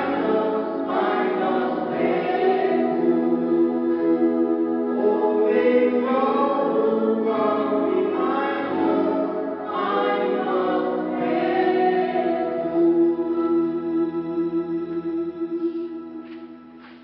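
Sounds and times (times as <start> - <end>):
choir singing gospel: 0.0 - 17.0.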